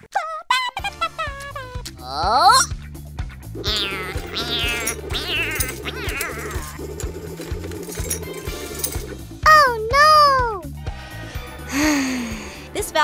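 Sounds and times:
background music: 0.5s - 13.0s
squeaky cartoon sound effects: 2.0s - 2.8s, 3.6s - 6.8s.

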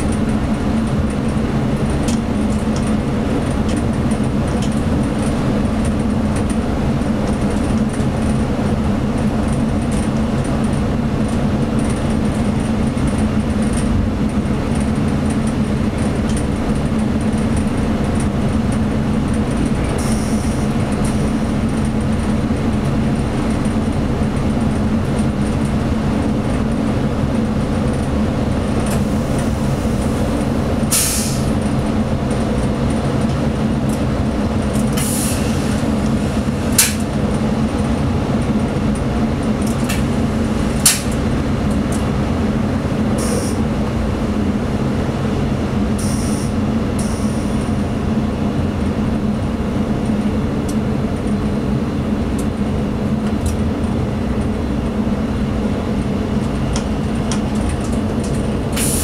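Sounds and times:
diesel railcar engine drone: 0.0s - 59.0s
wheel-on-rail rumble: 0.0s - 59.0s.

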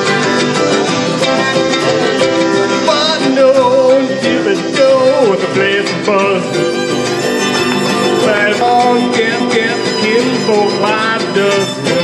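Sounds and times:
strummed guitars: 0.0s - 12.0s
fiddle sliding melody: 4.4s - 12.0s.

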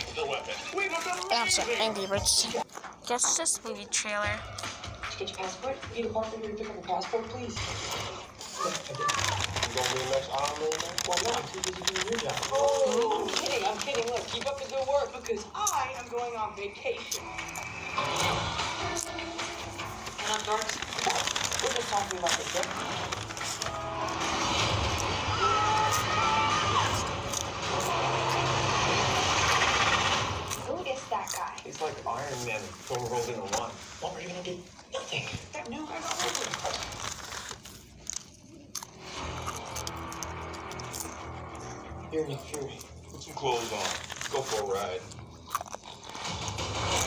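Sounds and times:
crunching and scraping: 0.0s - 3.0s, 7.6s - 16.4s, 17.1s - 47.0s
movie trailer music: 1.3s - 8.4s, 17.2s - 30.8s, 39.0s - 47.0s.

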